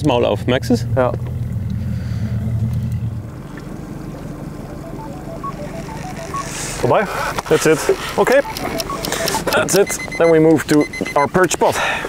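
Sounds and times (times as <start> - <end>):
high plinking notes: 4.7 - 6.7, 8.4 - 10.4.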